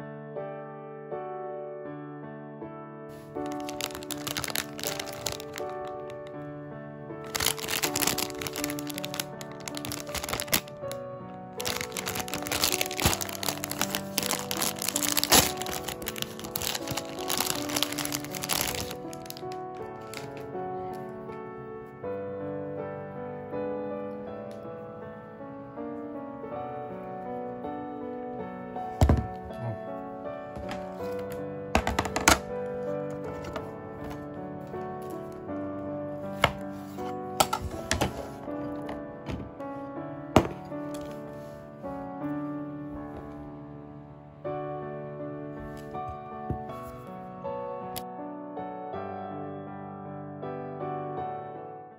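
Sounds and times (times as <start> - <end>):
background music: 3.1 - 48.1
plastic wrapper crinkling: 3.2 - 6.4, 7.2 - 21.2, 30.6 - 35.4, 36.2 - 39.5, 40.4 - 41.3.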